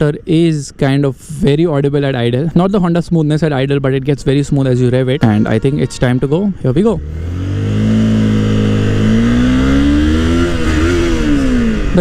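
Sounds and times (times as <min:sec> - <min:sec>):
motorcycle engine accelerating: 0:05.1 - 0:12.0.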